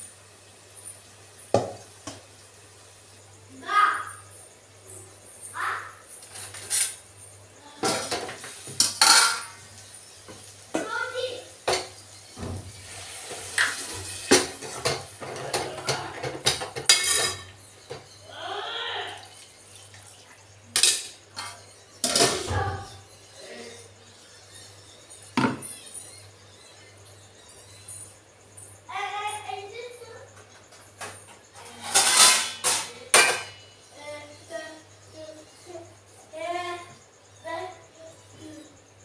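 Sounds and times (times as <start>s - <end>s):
spoon scraping in a pot: 6.2s - 7.1s, 12.8s - 18.2s, 31.6s - 33.5s
pot lid clanking: 13.6s - 18.0s.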